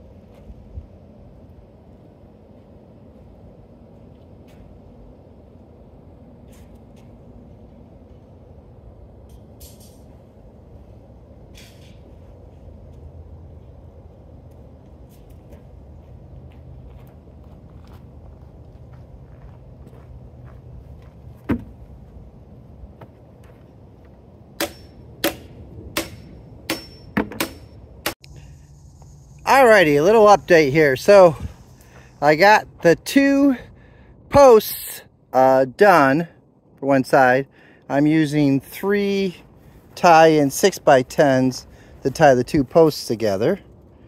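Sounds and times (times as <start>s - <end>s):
sharp knocks: 24.6s - 27.8s.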